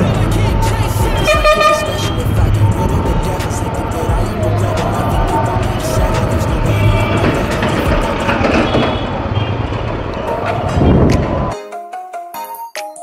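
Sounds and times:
motorcycle engine and road rumble: 0.0s - 11.5s
background music: 0.0s - 13.0s
wind noise: 2.2s - 11.5s.

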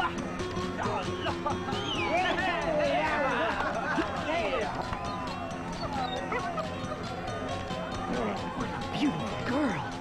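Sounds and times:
background music: 0.0s - 10.0s
dog yipping: 5.7s - 7.0s.

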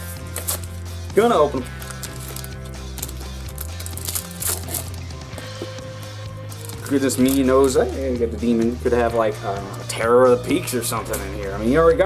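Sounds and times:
background music: 0.0s - 12.0s
packaging being torn open: 0.3s - 0.8s, 1.8s - 5.0s, 6.5s - 7.7s.

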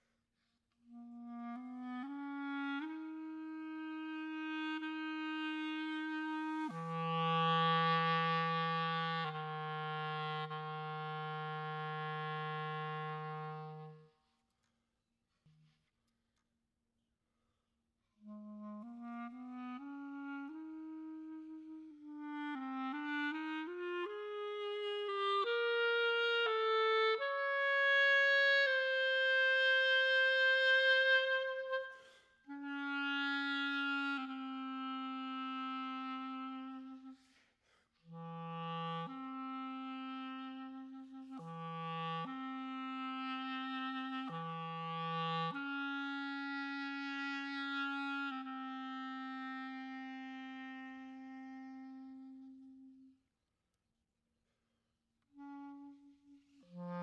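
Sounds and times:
solo clarinet playing: 0.8s - 14.4s, 18.2s - 37.4s, 38.0s - 53.2s, 55.2s - 57.0s.

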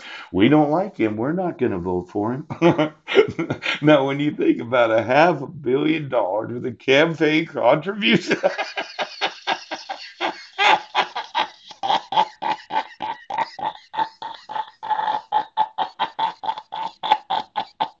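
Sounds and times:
man laughing hard: 2.5s - 4.8s, 7.8s - 18.0s.

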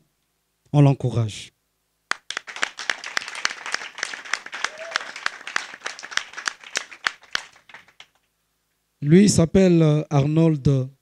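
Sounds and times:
people clapping: 2.1s - 8.3s.

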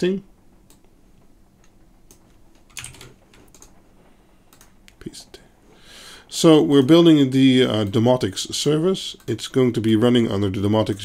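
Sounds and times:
computer keyboard keystrokes: 2.1s - 3.7s, 4.5s - 4.7s.

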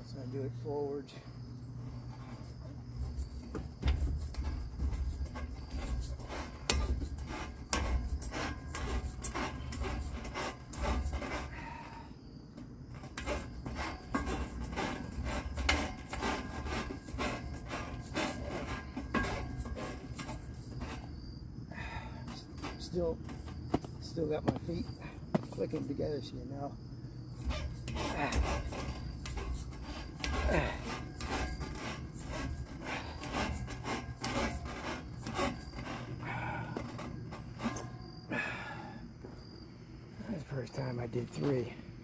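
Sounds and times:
hands on metal monkey bars: 1.9s - 11.6s, 12.5s - 21.2s, 22.0s - 26.1s, 27.3s - 38.0s.

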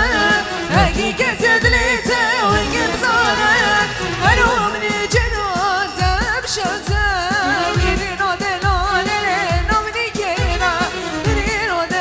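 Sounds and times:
person singing ornamented melody: 0.0s - 10.9s
low drum beat: 0.7s - 3.2s.

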